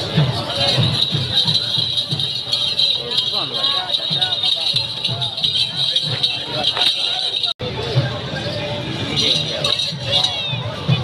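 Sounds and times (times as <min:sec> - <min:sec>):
low rhythmic thumps: 0:00.0 - 0:07.5
high jingling hiss: 0:00.0 - 0:07.6.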